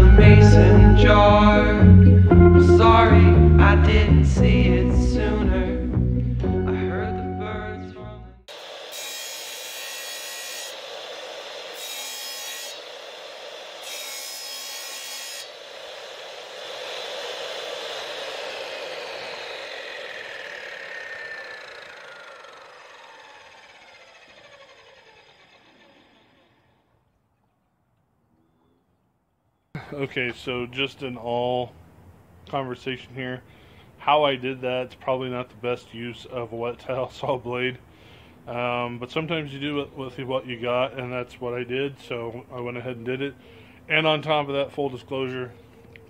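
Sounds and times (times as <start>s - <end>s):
saw blade spinning down whine: 0.0s - 5.9s, 6.6s - 27.2s
harsh grinding: 8.5s - 26.8s
wet tile saw cutting tile: 8.5s - 26.8s.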